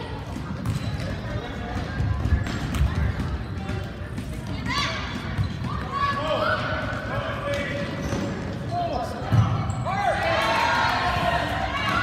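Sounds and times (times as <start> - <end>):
sneakers squeaking on gym floor: 0.2 - 10.2.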